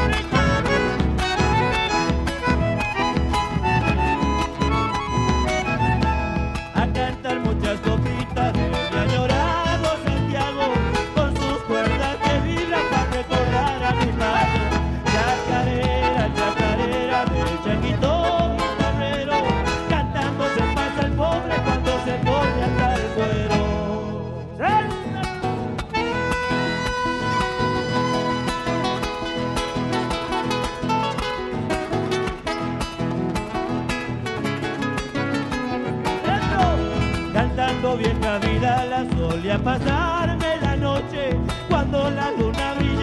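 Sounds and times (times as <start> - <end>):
bandoneon: 0.0 - 6.9, 8.1 - 24.2, 25.8 - 31.8
steady driving beat: 0.0 - 23.6, 25.2 - 43.0
acoustic guitar: 0.0 - 43.0.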